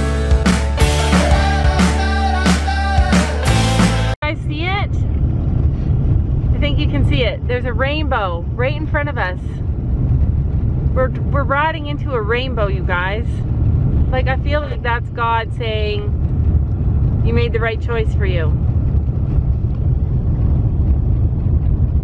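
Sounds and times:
car driving rumble inside cabin: 4.2 - 22.0.

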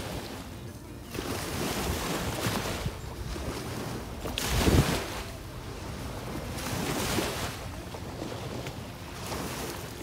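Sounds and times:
waves lapping on shore: 0.0 - 10.0
wind buffeting microphone: 1.2 - 9.7.

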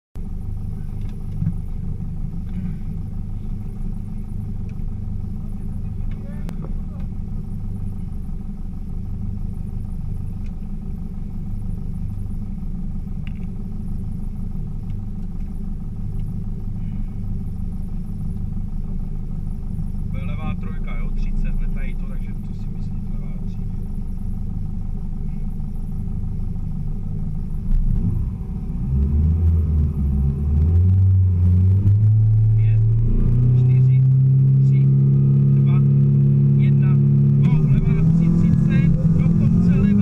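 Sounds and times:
car engine idling: 0.2 - 40.0.

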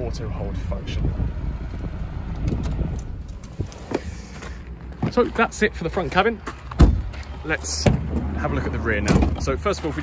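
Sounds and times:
wind rumble: 0.0 - 4.2.

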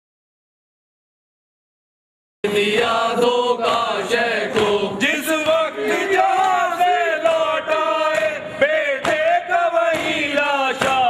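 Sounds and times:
voices chanting: 2.4 - 11.0.

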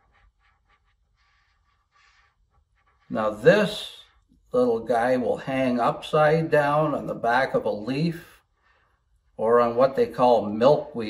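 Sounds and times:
marker strokes on paper: 0.0 - 4.6.

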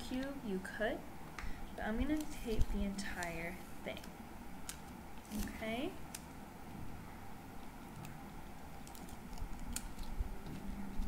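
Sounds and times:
paper and tape crinkling: 4.7 - 6.3, 7.7 - 11.0.

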